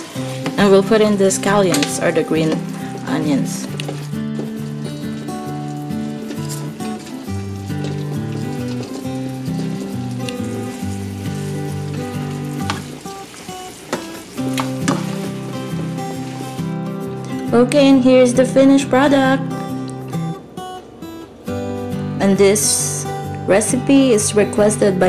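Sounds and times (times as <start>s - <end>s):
chicken wings sizzling in pan: 0.0s - 17.2s.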